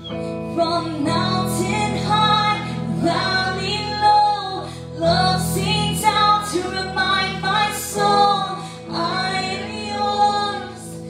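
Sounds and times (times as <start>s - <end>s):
live band with guitar: 0.0s - 11.0s
woman singing into a microphone: 0.0s - 11.0s.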